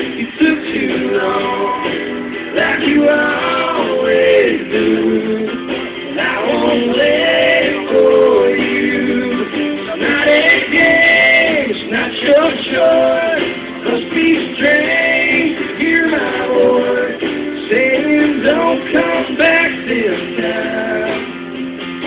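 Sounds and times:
man singing: 0.0s - 21.3s
strummed acoustic guitar: 0.0s - 22.0s.

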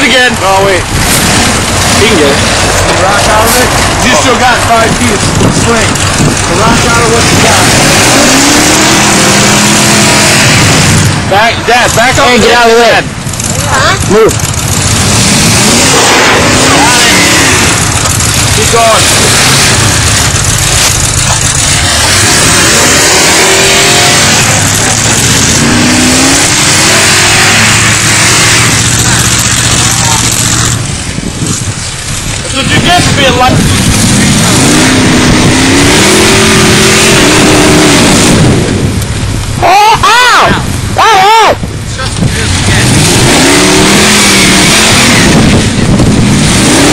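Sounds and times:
truck engine revving: 0.0s - 46.9s.

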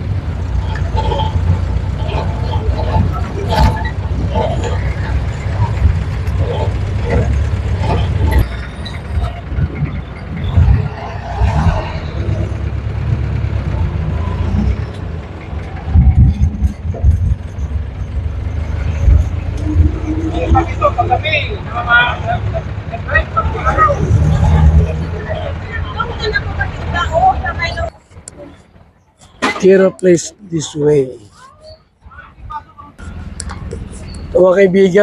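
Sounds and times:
vehicle knocks and jolts: 0.0s - 20.2s
motorcycle engine rumbling: 0.0s - 29.8s
passing road traffic: 0.0s - 35.0s
wind on microphone: 9.1s - 14.8s, 15.7s - 18.3s.

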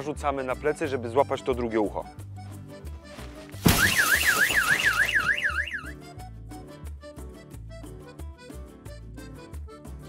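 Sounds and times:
light background music: 0.0s - 10.0s
loud crash with a thump: 3.6s - 5.6s
fast-warbling electronic siren: 3.7s - 6.0s.

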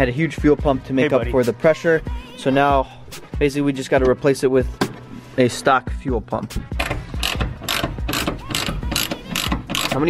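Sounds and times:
ratchet wrench clicking: 6.8s - 10.0s.

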